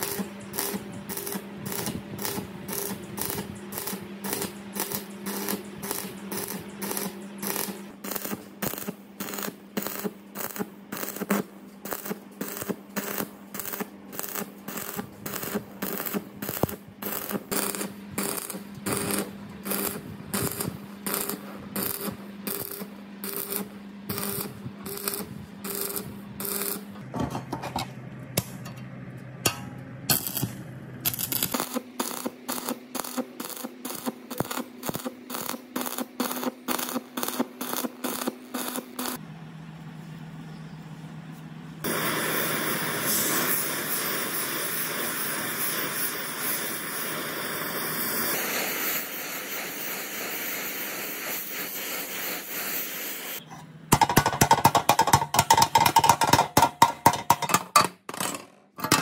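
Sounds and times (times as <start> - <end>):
torch flame hissing: 0.0 - 26.7, 41.8 - 53.4
welding arc crackling: 0.0 - 27.0, 30.1 - 39.2, 41.8 - 57.7
welding machine hum: 0.0 - 59.0.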